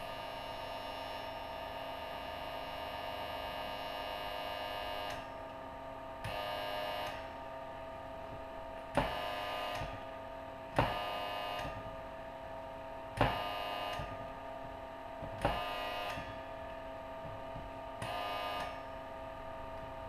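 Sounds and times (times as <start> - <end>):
faint hum: 0.0 - 20.0.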